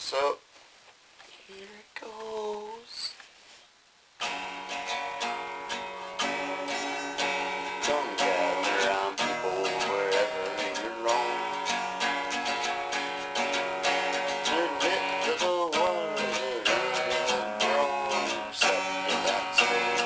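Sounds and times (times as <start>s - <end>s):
acoustic guitar strumming: 4.2s - 20.0s.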